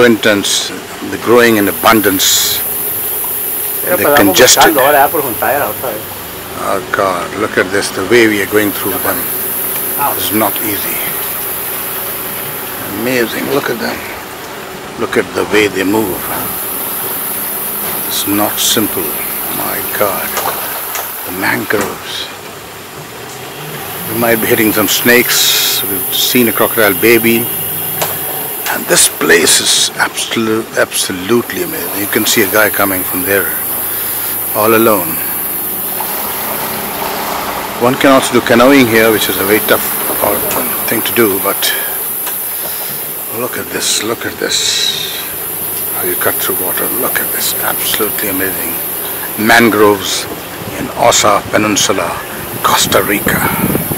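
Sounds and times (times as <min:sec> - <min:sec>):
boat motor droning: 0:00.0 - 0:53.9.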